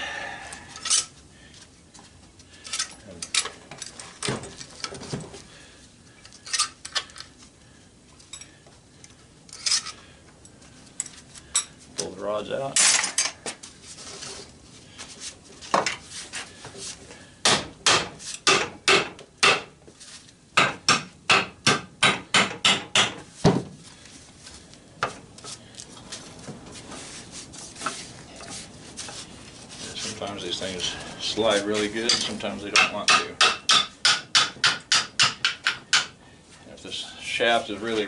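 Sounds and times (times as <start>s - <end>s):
hammer striking metal: 20.6s - 23.2s, 32.1s - 36.1s.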